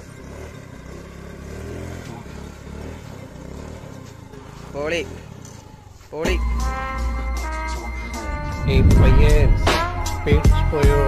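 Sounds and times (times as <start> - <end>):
scooter engine revving: 0.0 - 11.0.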